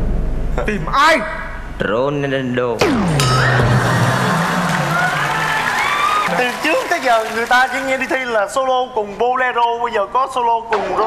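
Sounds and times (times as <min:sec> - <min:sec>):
studio audience laughing and cheering: 0:03.1 - 0:08.3.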